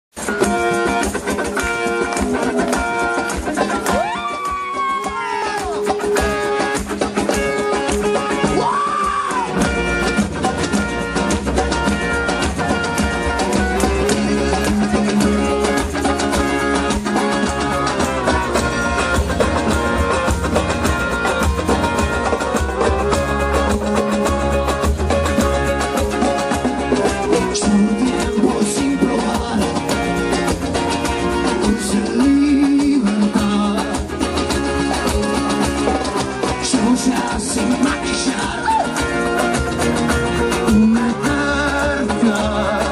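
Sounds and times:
live rock band music: 0.1s - 42.9s.

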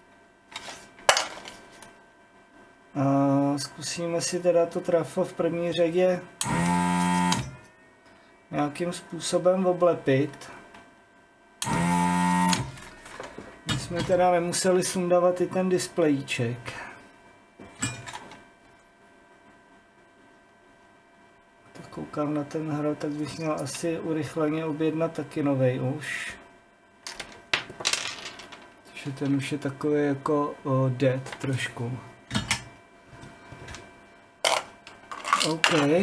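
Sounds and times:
desoldering vacuum pump buzzing: 2.9s - 19.7s.

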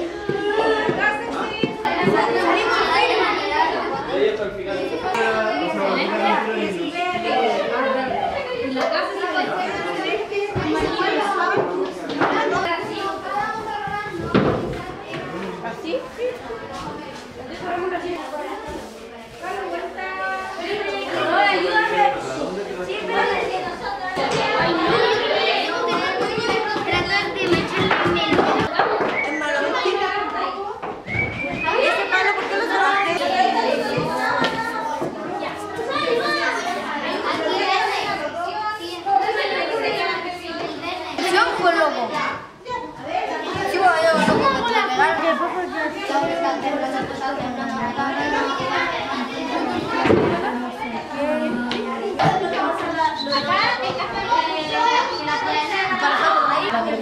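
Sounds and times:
children chattering: 0.0s - 57.0s.

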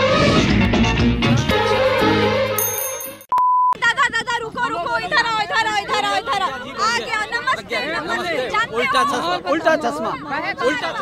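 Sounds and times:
short electronic beep: 3.3s - 3.8s.

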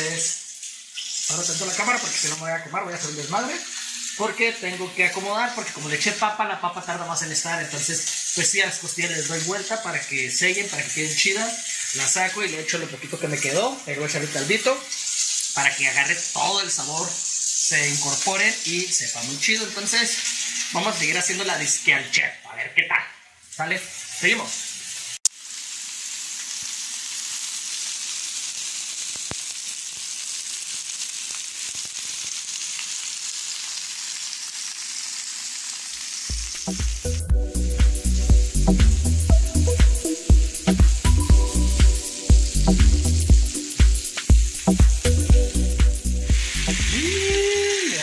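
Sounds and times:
food sizzling in a skillet: 0.0s - 22.5s, 23.2s - 48.0s.

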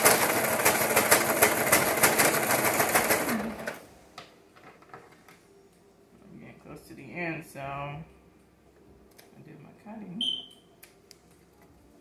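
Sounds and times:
sewing machine beep: 10.2s - 10.6s.

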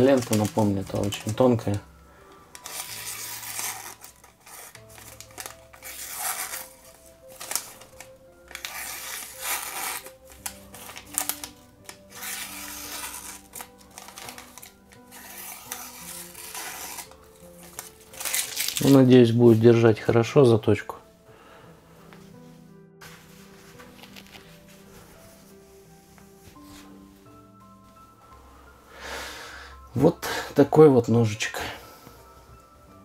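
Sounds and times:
knife slicing paper: 0.0s - 1.5s, 2.5s - 19.1s
soft background music: 0.0s - 33.0s.

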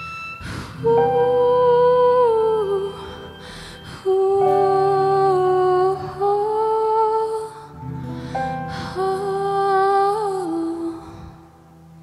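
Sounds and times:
soft keyboard chord: 0.0s - 12.0s
singer breathing in: 3.4s - 4.0s, 7.7s - 9.0s.

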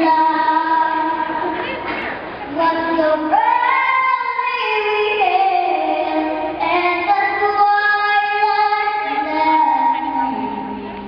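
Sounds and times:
girl singing unaccompanied: 0.0s - 11.0s.

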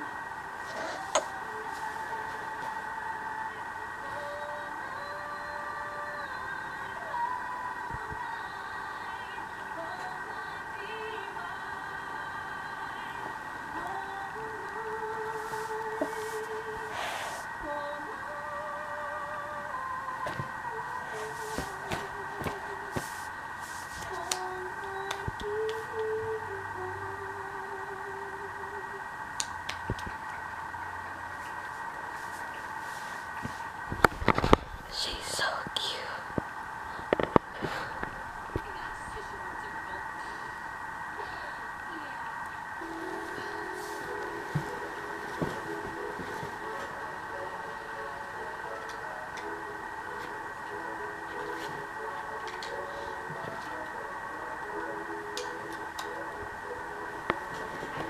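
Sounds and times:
faint television film audio: 0.0s - 58.0s
steady background hum: 0.0s - 58.0s.

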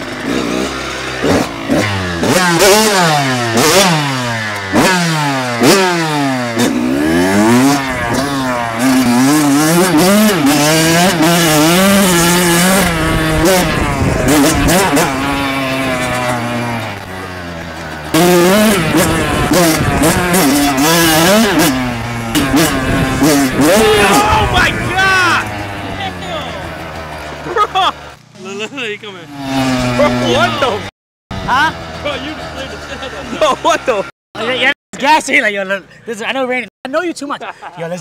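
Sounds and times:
dirt bike engine revving: 0.0s - 35.4s.

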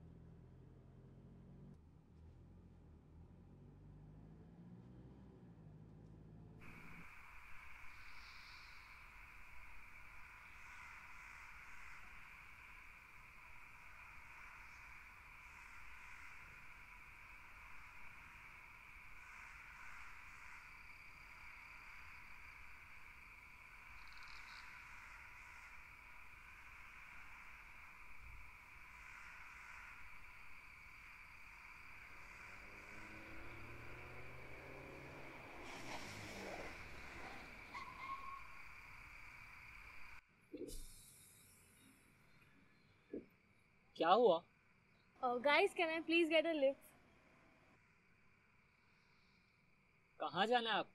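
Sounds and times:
car engine approaching: 0.0s - 40.2s
crickets trilling: 6.6s - 46.7s, 47.8s - 50.9s
short high insect chirps: 6.8s - 43.7s.

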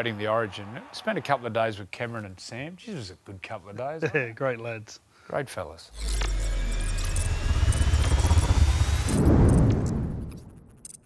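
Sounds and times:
deep steady rumble: 6.0s - 10.4s
thin high rising tone: 6.0s - 10.7s.

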